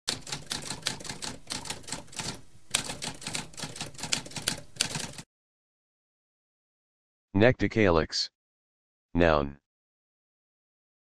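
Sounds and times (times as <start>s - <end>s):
manual typewriter keystrokes: 0.1s - 5.2s.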